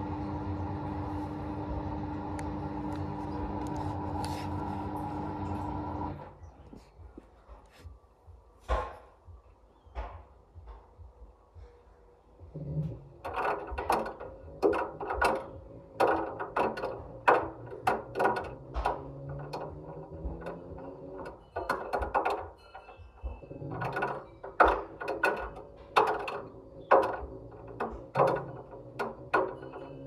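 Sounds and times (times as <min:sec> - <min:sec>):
drum motor hum: 0:00.0 - 0:06.3, 0:12.4 - 0:30.0
ball knocking in washing machine drum: 0:12.8 - 0:30.0.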